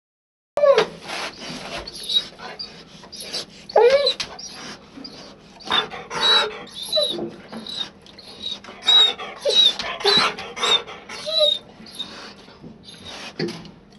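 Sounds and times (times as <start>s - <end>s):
dog whining and whimpering: 0.6s - 13.4s.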